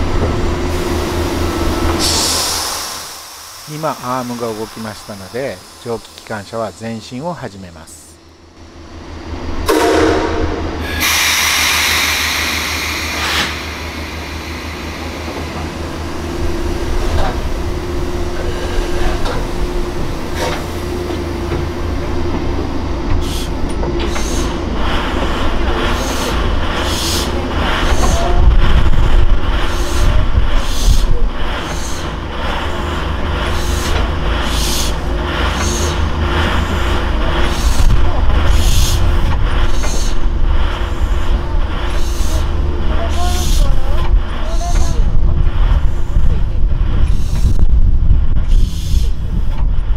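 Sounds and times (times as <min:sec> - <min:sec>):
locomotive running: 0:00.0 - 0:49.9
rhythmic exhaust puffs: 0:00.6 - 0:08.1
blast of hissing air: 0:02.0 - 0:06.9, 0:10.8 - 0:17.7.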